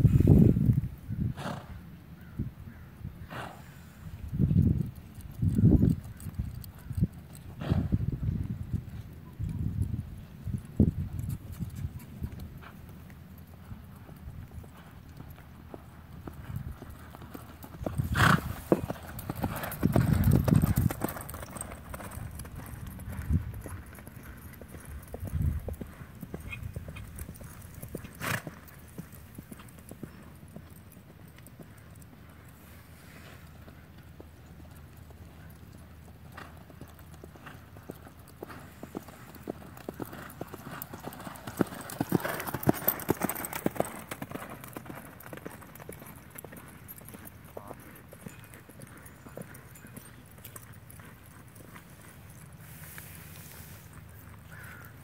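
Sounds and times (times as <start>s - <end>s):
horse hooves on soft dirt: 0.0s - 55.0s.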